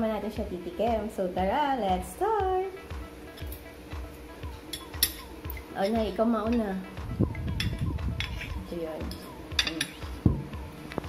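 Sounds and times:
forks clinking on a plate: 0:04.7 - 0:06.6, 0:07.6 - 0:10.0.

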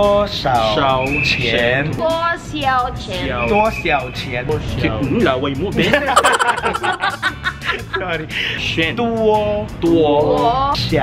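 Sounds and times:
group of people laughing: 0:05.8 - 0:08.4
background music: 0:05.8 - 0:09.9.

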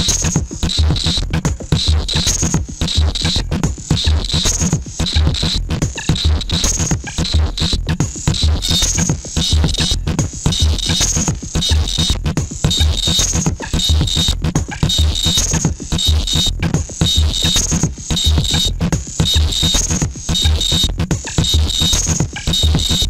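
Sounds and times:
electronic noise drone music: 0:00.0 - 0:23.0
gritty filtered high noise: 0:00.0 - 0:23.0
synthesizer bass pulses: 0:00.0 - 0:23.0.

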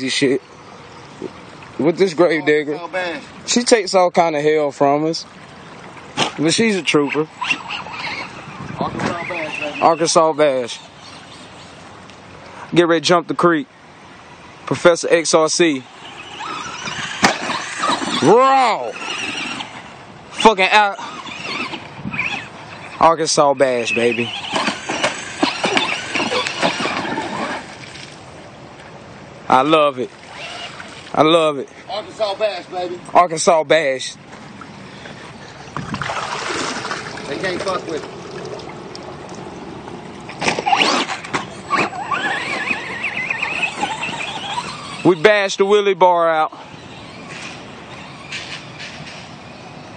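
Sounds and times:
sharp crack: 0:06.1 - 0:06.5, 0:17.1 - 0:18.2
toy truck motor whining: 0:06.9 - 0:11.8, 0:15.6 - 0:27.7, 0:30.3 - 0:30.9, 0:40.4 - 0:45.6, 0:46.5 - 0:49.8
chassis knocking over rocks: 0:16.4 - 0:18.2.

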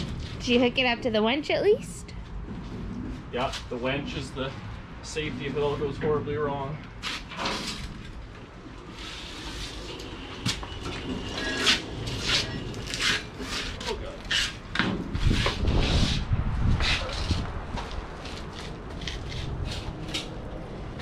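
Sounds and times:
wheels rolling on concrete: 0:00.0 - 0:21.0.

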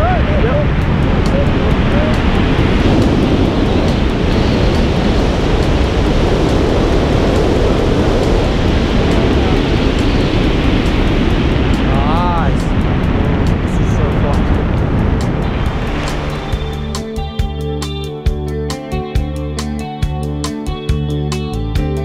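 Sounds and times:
wind rushing over microphone: 0:00.0 - 0:18.7
brief rising and falling tone: 0:15.5 - 0:17.7.

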